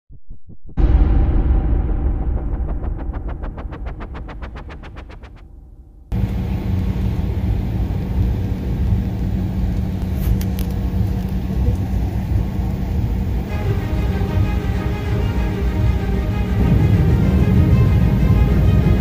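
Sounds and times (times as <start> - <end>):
loud swooshing sound: 0.7 - 6.2
jet engine rumble in cabin: 6.1 - 14.7.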